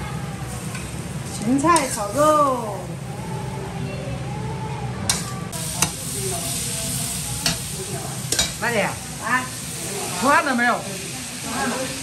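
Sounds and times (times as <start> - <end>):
sausage sizzling in a wok: 0.0 - 4.4, 5.1 - 12.0.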